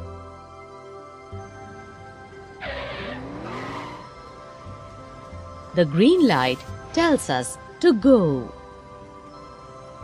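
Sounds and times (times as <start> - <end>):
background music: 0.0 - 10.0
vehicle tyres screeching: 2.6 - 4.3.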